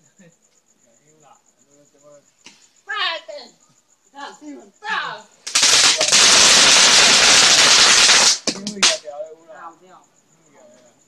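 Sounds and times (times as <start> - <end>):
firework fizzing and crackling: 5.4 - 9.1.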